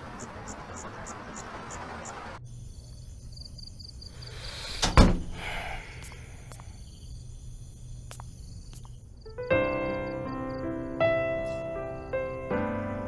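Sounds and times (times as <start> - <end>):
door swishing shut: 4.7 - 5.5
door thud: 4.8 - 5.5
faint clicks: 5.9 - 6.8, 8.0 - 9.0.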